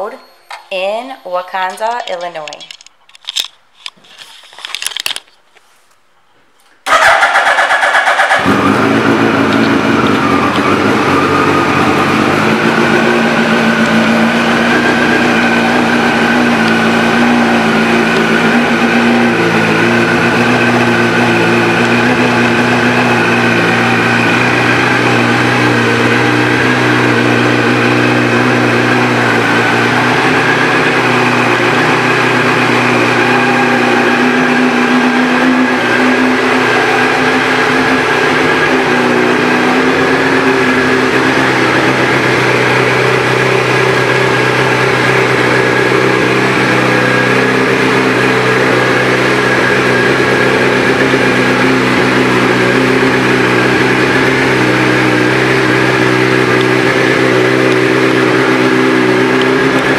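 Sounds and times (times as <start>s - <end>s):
motorcycle engine starting and idling: 6.8s - 59.9s.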